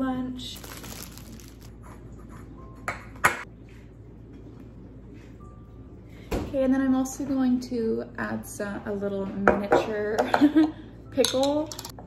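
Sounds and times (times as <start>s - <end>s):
plastic bag crinkling: 0.4s - 1.7s.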